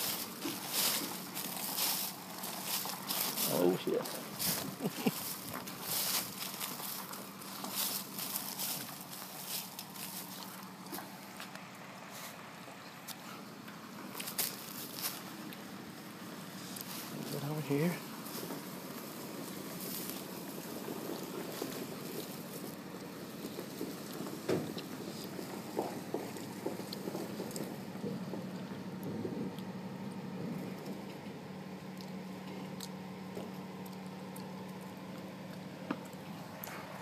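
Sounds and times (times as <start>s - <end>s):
truck engine running low: 0.0s - 37.0s.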